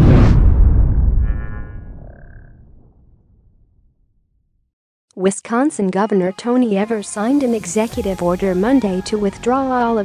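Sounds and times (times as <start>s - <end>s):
deep boom rumble: 0.0s - 4.2s.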